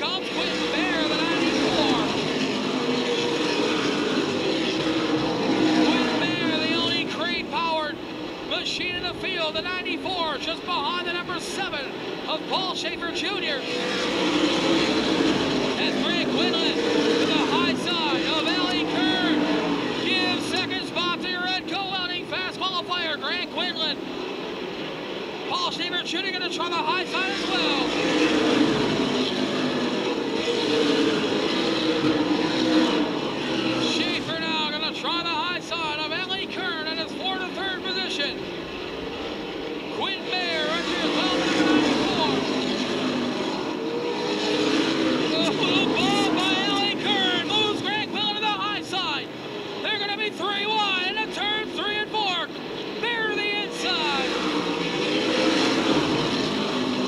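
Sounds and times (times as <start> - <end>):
race car engines: 0.0 - 57.0
indistinct voices: 45.3 - 54.4.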